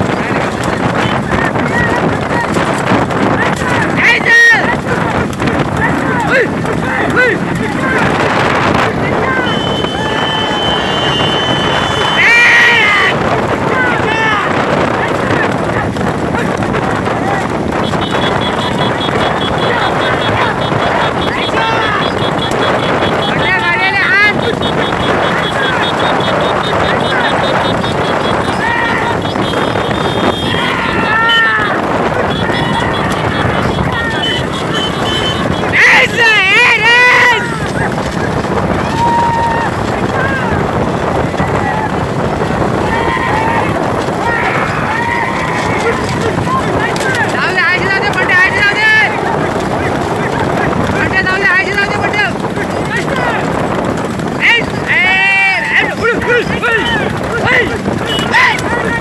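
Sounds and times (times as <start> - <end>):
galloping horse: 0.0 - 59.0
hooves clattering on tarmac: 0.0 - 59.0
motorbike engines running: 0.0 - 59.0
wind noise on microphone: 0.0 - 59.0
person shouting: 3.4 - 5.1, 5.8 - 8.1, 12.0 - 17.5, 18.4 - 22.5, 23.2 - 29.4, 30.2 - 42.0, 42.8 - 53.4, 54.4 - 59.0.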